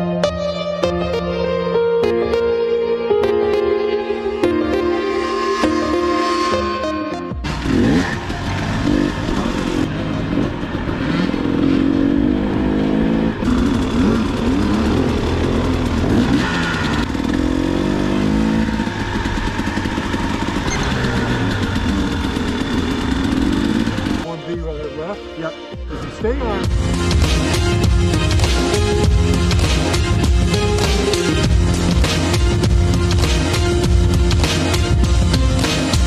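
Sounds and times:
music: 0.0s - 11.8s, 23.1s - 36.0s
dirt bike engines revving: 7.4s - 24.3s.

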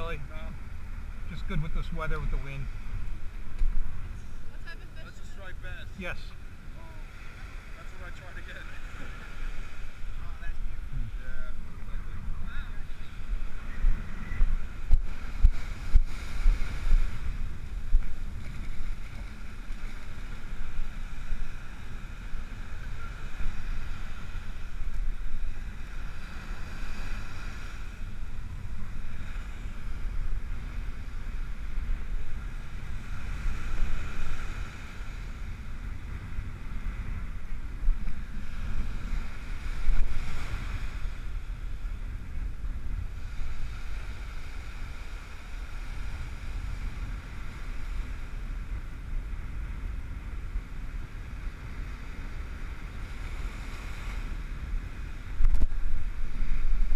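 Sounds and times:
surf breaking on beach: 0.0s - 56.9s
wind buffeting microphone: 0.0s - 56.9s.

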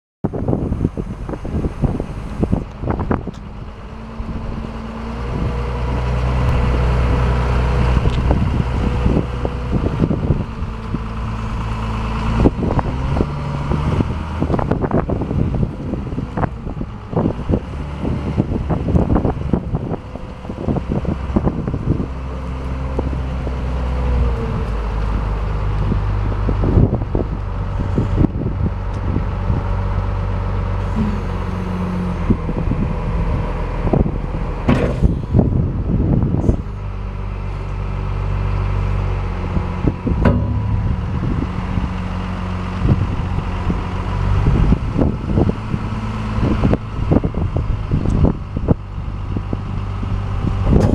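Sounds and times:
diesel engine running: 0.2s - 50.9s
wind noise on microphone: 0.2s - 50.9s
sharp knocks: 40.2s - 41.8s.

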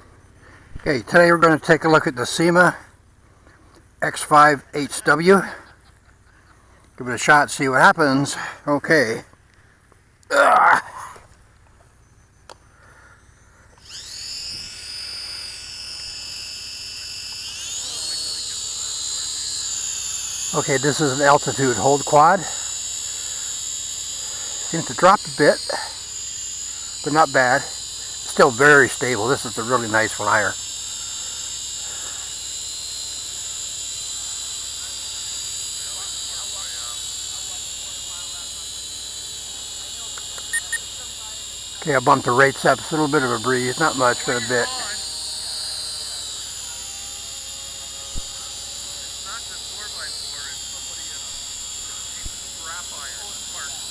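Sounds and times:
drone propellers whining: 10.2s - 53.9s
short high beeps: 40.5s - 40.9s.

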